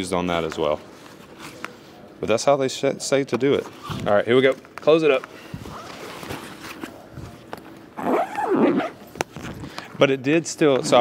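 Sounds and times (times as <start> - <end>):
zipper pulled shut: 5.6 - 6.9, 8.0 - 9.0.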